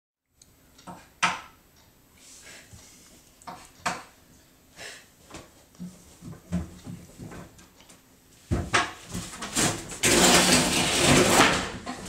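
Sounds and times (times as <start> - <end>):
sharp knocks and clicks: 0.8 - 1.6, 3.5 - 4.1.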